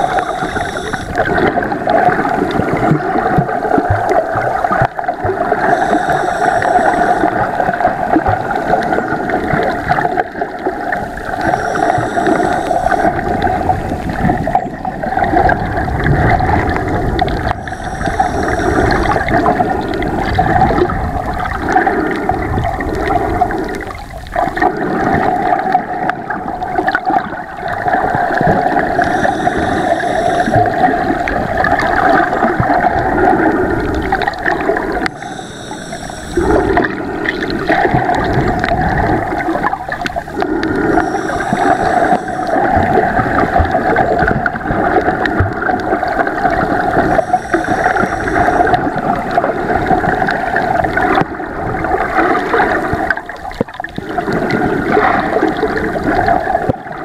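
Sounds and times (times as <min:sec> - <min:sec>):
underwater rush and gurgle: 0:00.0 - 0:57.0.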